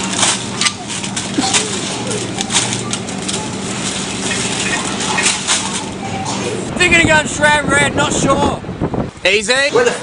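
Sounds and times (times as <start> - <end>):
plastic packaging rustling: 0.0 - 6.0
low hum: 0.0 - 7.8.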